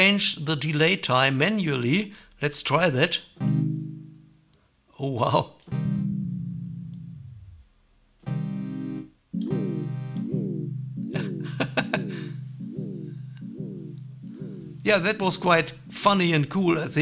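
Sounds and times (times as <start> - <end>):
synth notes with pitch-bending echoes: 3.4 - 4.4, 5.7 - 17.0.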